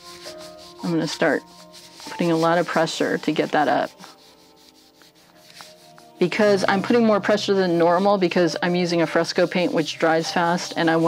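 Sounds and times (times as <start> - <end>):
palms rubbing over paper: 0.0 - 11.0.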